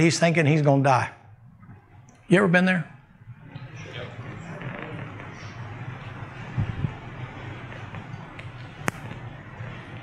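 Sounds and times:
large hall room tone: 0.0s - 10.0s.

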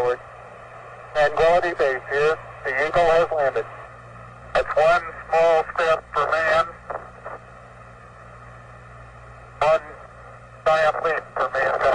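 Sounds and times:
low hum: 0.0s - 11.9s
radio static hiss: 0.0s - 11.9s
man's radio-filtered voice: 1.2s - 3.7s, 4.5s - 7.1s, 9.6s - 11.9s.

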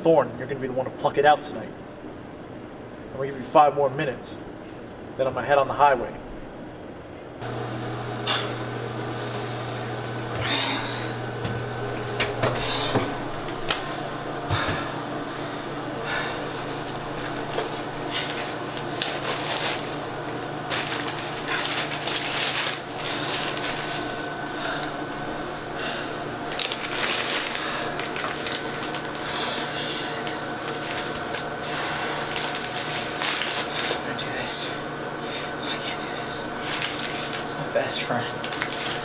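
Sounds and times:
paper bag crinkling: 16.6s - 25.0s, 26.4s - 34.4s, 36.3s - 39.0s.

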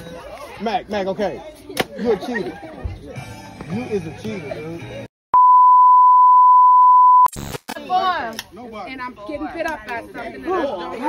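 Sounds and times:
steady test tone beep: 5.4s - 7.3s.

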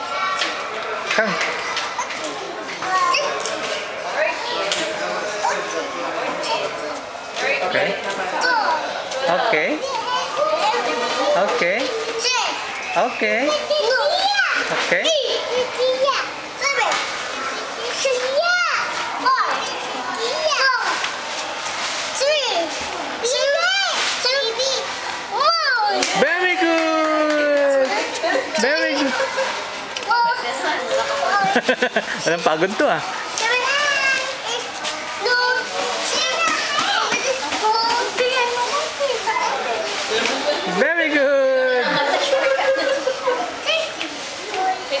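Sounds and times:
children's voices: 0.0s - 9.2s, 9.8s - 26.2s, 27.3s - 32.1s, 33.0s - 40.8s, 41.8s - 45.0s.

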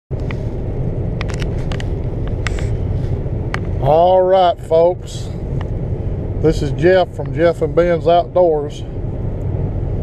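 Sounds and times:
car road noise rumble: 0.1s - 10.0s
man's voice: 3.8s - 5.4s, 6.4s - 8.9s.

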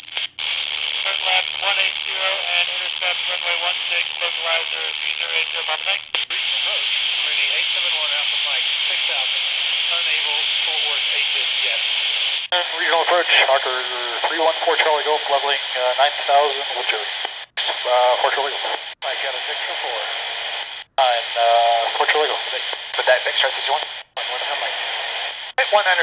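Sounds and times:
radio static hiss: 0.0s - 26.0s
muffled radio voices: 0.2s - 26.0s.

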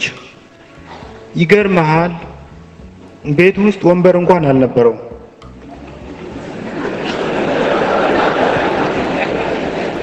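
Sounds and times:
audience laughing: 5.8s - 10.0s.

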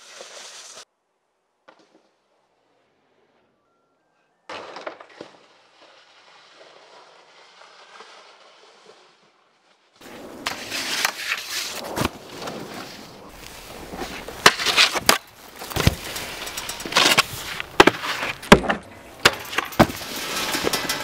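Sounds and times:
snowboard scraping over snow: 0.0s - 0.8s, 5.3s - 21.0s
board knocking on snow and rails: 10.0s - 21.0s.

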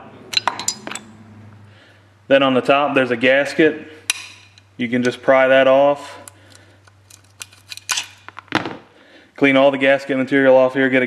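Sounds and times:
screwdriver scraping metal: 7.1s - 8.2s.

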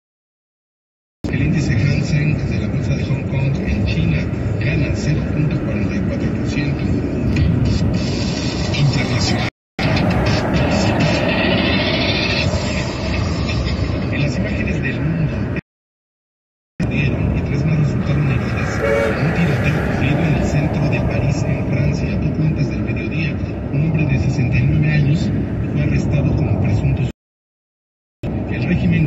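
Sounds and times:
car road and engine noise: 1.3s - 15.6s, 16.8s - 27.1s, 28.2s - 29.0s
indistinct voice or radio: 1.3s - 15.6s, 16.8s - 24.3s.

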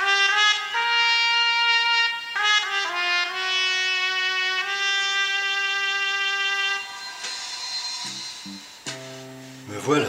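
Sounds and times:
long held trumpet note: 0.0s - 9.7s
instrumental music: 0.0s - 10.0s.

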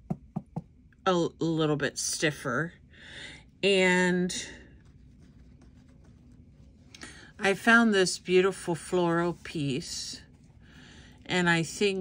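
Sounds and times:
cloth rustling: 4.6s - 7.4s.

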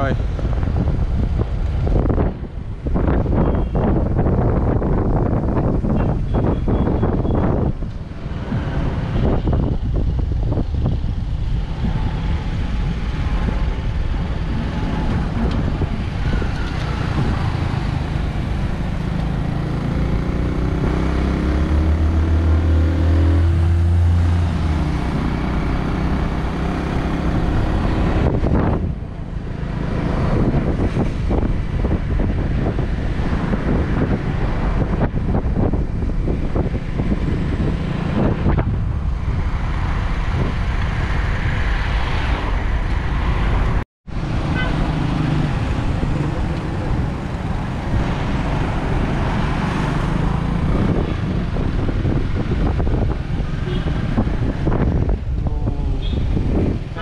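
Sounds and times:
deeper engine hum: 0.0s - 57.0s
wind rushing over microphone: 0.0s - 57.0s.

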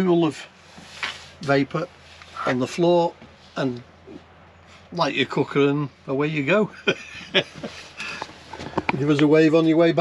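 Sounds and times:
man laughing: 6.7s - 8.3s.

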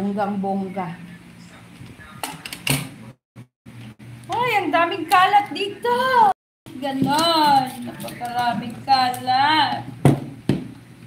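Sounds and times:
knocks of object handled: 10.0s - 10.8s.

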